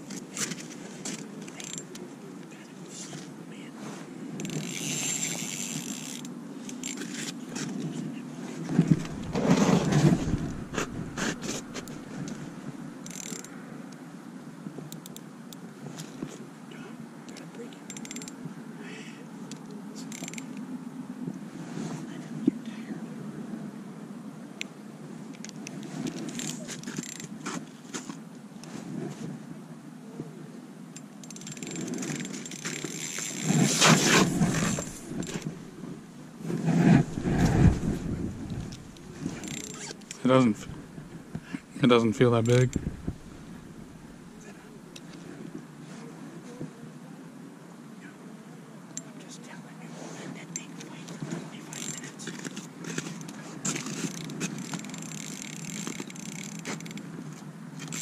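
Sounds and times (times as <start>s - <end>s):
fishing reel whirring and clicking: 4.4s - 7.3s, 13.0s - 13.5s, 17.9s - 18.4s, 20.1s - 20.6s, 25.4s - 27.3s, 31.0s - 35.5s, 37.2s - 40.2s, 51.7s - 52.5s, 53.7s - 57.1s, 57.8s - 58.0s
broad noise: 7.8s - 12.6s, 32.0s - 45.0s.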